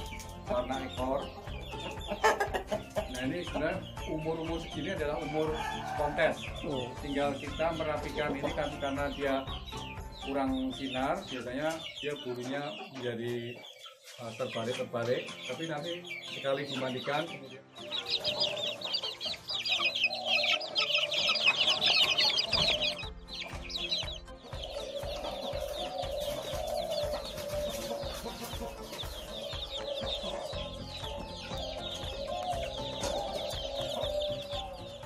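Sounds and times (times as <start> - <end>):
background music with beat: 0.0 - 13.0, 17.7 - 35.0
chicks peeping: 0.0 - 35.0.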